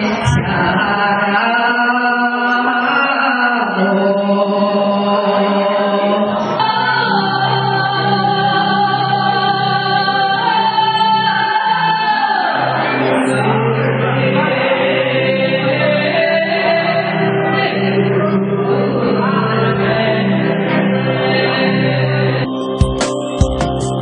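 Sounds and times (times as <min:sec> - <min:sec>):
woman singing long drawn-out notes: 0:00.0 - 0:23.9
steady low backing: 0:12.6 - 0:24.0.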